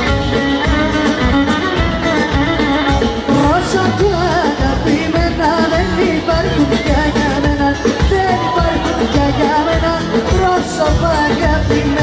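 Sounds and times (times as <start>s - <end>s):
live band playing: 0.0s - 12.0s
person singing: 2.2s - 12.0s.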